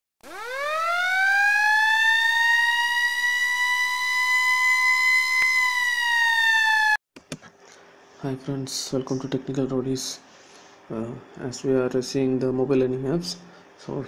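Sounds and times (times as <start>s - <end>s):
siren-like rising tone: 0.2s - 7.0s.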